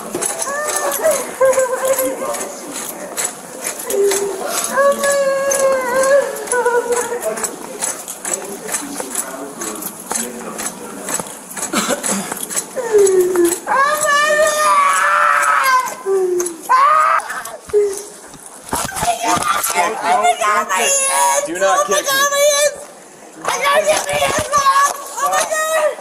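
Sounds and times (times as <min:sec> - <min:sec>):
faint clicks and rattles: 0:00.0 - 0:19.8
woman moaning and wailing: 0:03.8 - 0:07.2, 0:12.8 - 0:18.2.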